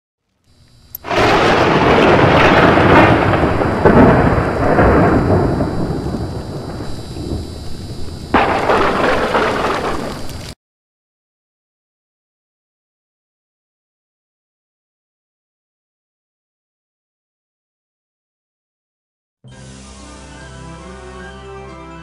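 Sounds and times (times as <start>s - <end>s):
thunder crash rumbling: 1.0s - 10.6s.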